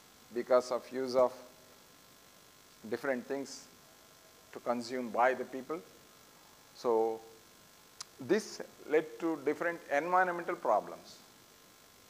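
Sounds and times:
faint electrical hum: 0:00.0 - 0:12.0
man speaking: 0:00.3 - 0:01.5, 0:02.8 - 0:03.7, 0:04.5 - 0:05.9, 0:06.8 - 0:07.4, 0:08.1 - 0:11.3.

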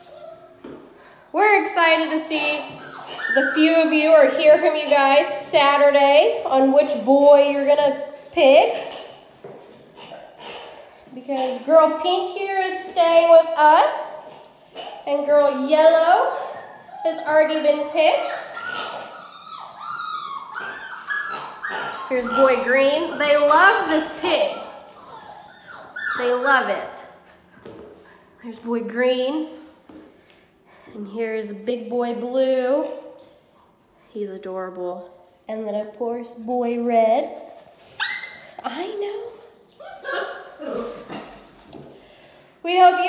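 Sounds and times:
puppies whining and yipping: 0:00.0 - 0:00.7, 0:02.5 - 0:05.0, 0:16.2 - 0:27.2, 0:37.9 - 0:42.0.

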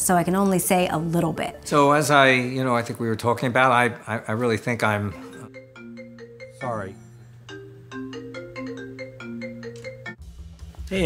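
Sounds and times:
marimba-like phone ringtone: 0:05.1 - 0:10.2.

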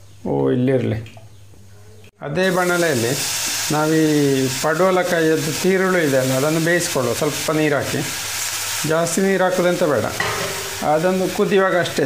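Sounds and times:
vegetables sizzling in oil: 0:02.4 - 0:12.0.

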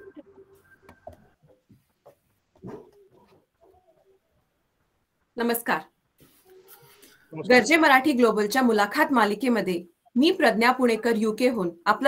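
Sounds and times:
faint low bird cooing: 0:02.6 - 0:04.6.

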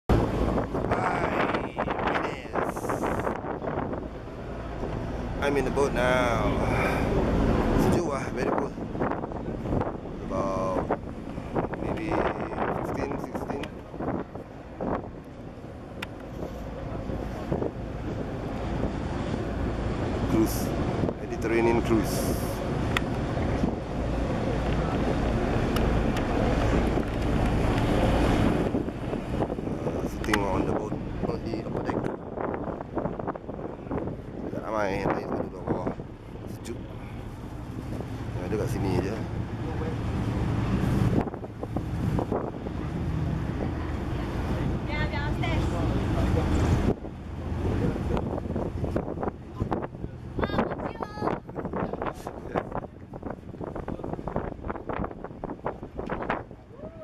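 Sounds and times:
low boat rumble: 0:00.0 - 0:57.0
water rushing: 0:00.0 - 0:57.0
wind buffeting microphone: 0:00.1 - 0:57.0.

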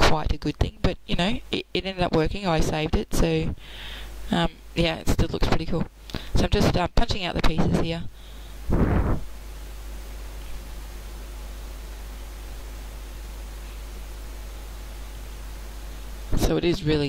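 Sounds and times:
steady hiss: 0:08.0 - 0:17.0
low hum: 0:08.2 - 0:16.4
short burst of noise: 0:08.7 - 0:09.3.

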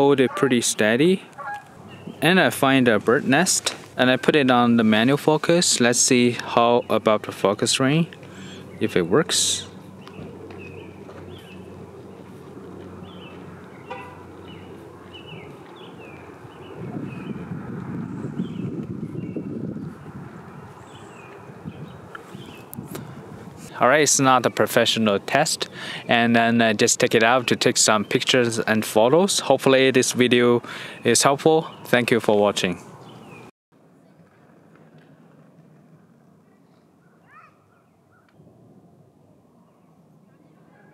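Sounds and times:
passing vehicle rumble: 0:00.0 - 0:27.7, 0:38.4 - 0:40.7
faint outdoor ambience: 0:00.0 - 0:40.9
traffic hum: 0:00.0 - 0:40.9.

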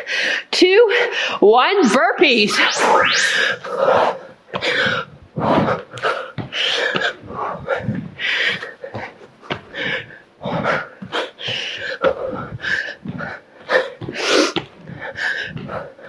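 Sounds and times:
woman breathing hard: 0:04.6 - 0:16.0.

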